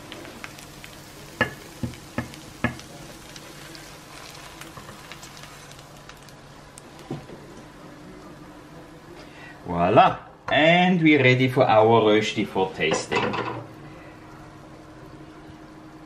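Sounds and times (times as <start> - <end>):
potato sizzling in pan: 0.0 - 7.6.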